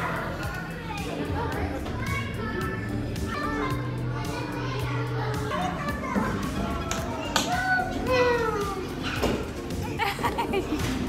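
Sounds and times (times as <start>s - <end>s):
children's voices and calls: 0.0s - 10.2s
background music: 0.0s - 11.0s.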